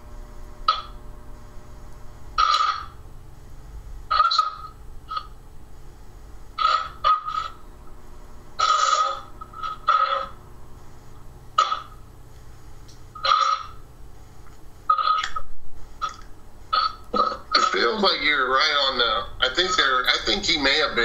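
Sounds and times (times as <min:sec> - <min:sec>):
low steady hum: 0:00.0 - 0:21.0
choppy radio bursts: 0:08.6 - 0:11.0, 0:16.7 - 0:21.0.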